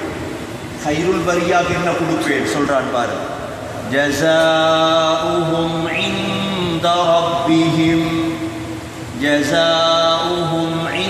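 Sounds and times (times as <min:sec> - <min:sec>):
man chanting melodically: 0:00.8 - 0:11.0.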